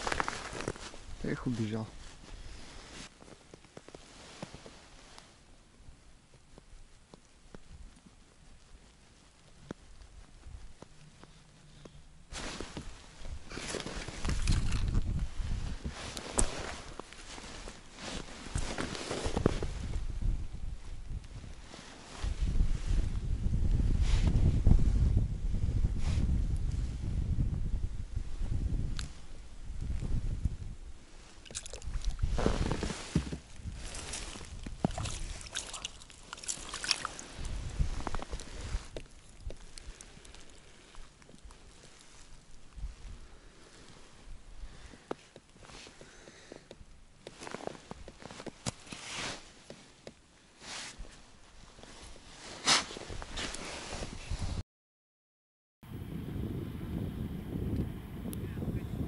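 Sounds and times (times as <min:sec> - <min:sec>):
snow and ice crunching: 0:00.0 - 0:05.4, 0:08.5 - 0:20.3, 0:31.1 - 0:46.5, 0:47.3 - 0:50.0
wind buffeting microphone: 0:13.2 - 0:16.1, 0:19.4 - 0:36.0, 0:36.8 - 0:40.0, 0:42.6 - 0:43.5, 0:53.1 - 0:54.6, 0:55.8 - 0:59.0.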